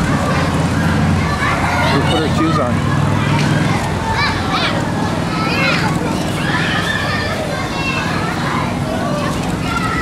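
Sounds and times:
children's voices: 0.0s - 10.0s
crowd chatter: 0.0s - 10.0s
child's high-pitched squeal: 6.4s - 8.2s.

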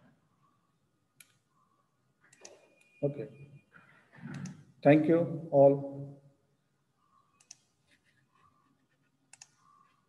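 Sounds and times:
computer mouse clicks: 1.2s - 1.4s, 2.3s - 3.0s, 4.2s - 4.7s, 7.3s - 10.0s.

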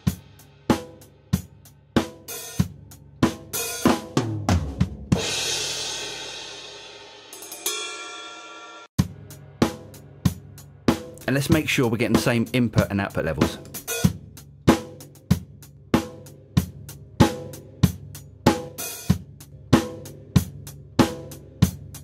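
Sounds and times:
drum kit playing a beat: 0.0s - 22.0s
crash cymbal ringing: 7.3s - 8.9s.

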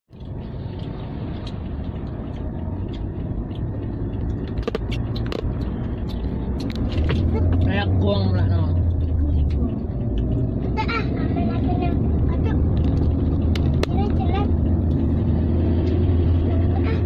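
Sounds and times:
car driving on highway: 0.1s - 17.0s.

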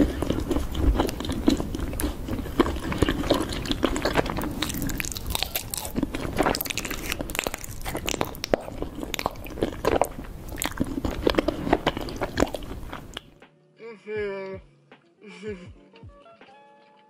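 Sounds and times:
chewing crunchy honeycomb: 0.0s - 13.4s.

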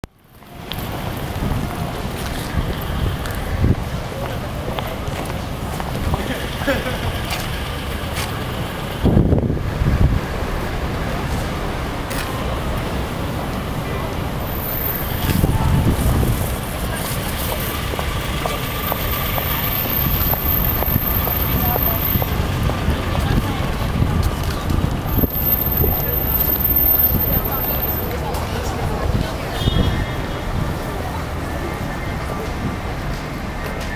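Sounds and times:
low traffic rumble: 0.0s - 33.9s
street noise: 0.0s - 33.9s
passers-by talking: 0.3s - 33.9s
wind buffeting microphone: 1.0s - 6.3s, 8.9s - 11.8s, 15.1s - 26.1s.

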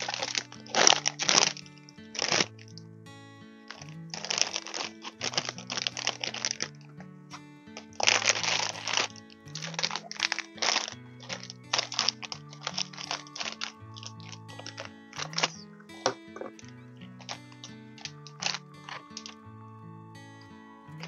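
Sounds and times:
plastic packaging crinkling: 0.0s - 2.7s, 3.7s - 6.7s, 7.7s - 19.4s
background music with slow bass: 0.0s - 21.0s.

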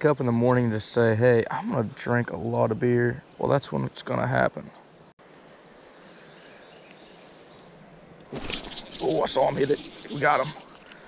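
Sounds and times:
faint outdoor background: 0.0s - 11.0s
loud handling noise: 8.3s - 10.9s.

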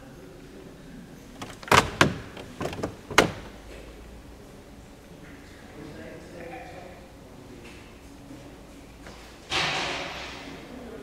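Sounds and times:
sharp knocks and clunks: 1.4s - 3.6s.

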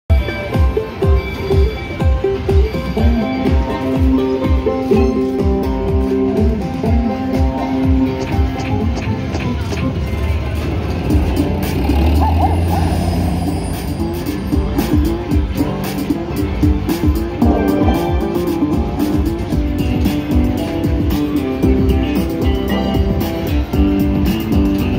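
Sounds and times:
slot machine music and jingles: 17.4s - 18.8s.

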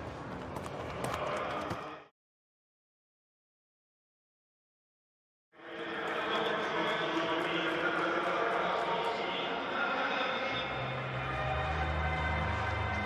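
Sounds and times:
busy background noise: 5.6s - 13.0s.

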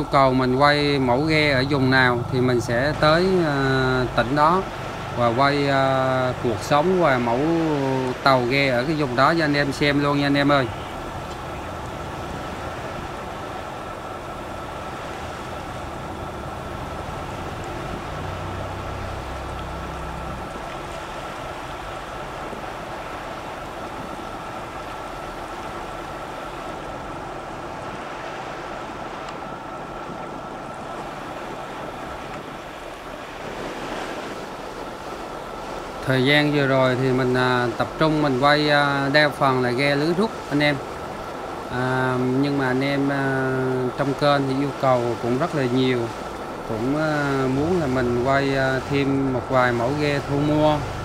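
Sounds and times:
faint high whine: 0.0s - 51.0s
sea waves: 0.0s - 51.0s
wind on microphone: 0.0s - 51.0s.

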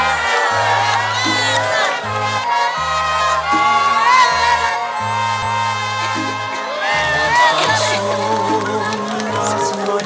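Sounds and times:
birthday song instrumental track: 0.0s - 10.0s
crowd cheering: 0.0s - 10.0s
crowd singing along: 0.0s - 10.0s.

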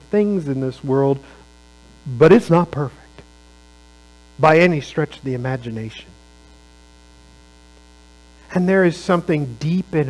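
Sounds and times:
electrical mains hum: 0.0s - 10.0s
thin electrical buzz: 0.0s - 10.0s.

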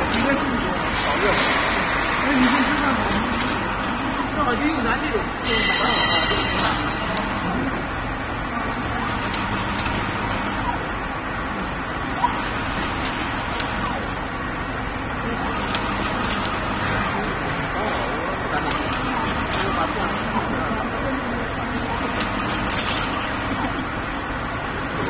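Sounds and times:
donut fryer running: 0.0s - 25.0s.

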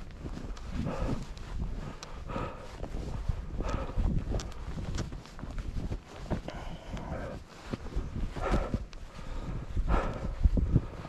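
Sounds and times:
footsteps crunching through snow: 0.0s - 11.0s
wind rumble on microphone: 0.0s - 11.0s.

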